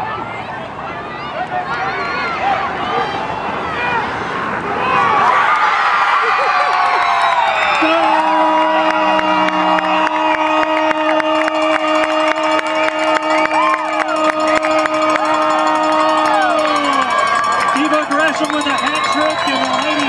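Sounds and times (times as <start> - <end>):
crowd cheering and screaming: 1.0 - 20.0
long horn blast: 8.0 - 16.0.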